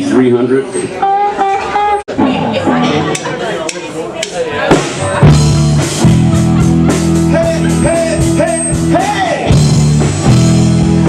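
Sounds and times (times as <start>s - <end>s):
band playing: 0.7s - 11.0s
drumsticks clicking together: 3.1s - 4.4s.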